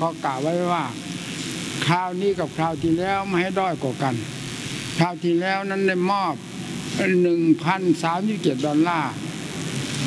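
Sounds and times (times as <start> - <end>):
man speaking: 0.0 - 1.0, 1.8 - 4.4, 5.0 - 6.4, 7.0 - 9.2
steady hiss: 0.0 - 10.0.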